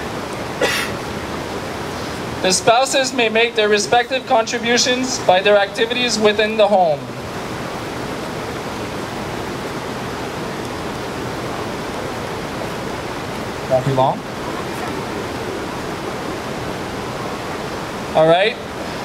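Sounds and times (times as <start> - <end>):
river water rushing: 0.0 - 19.0.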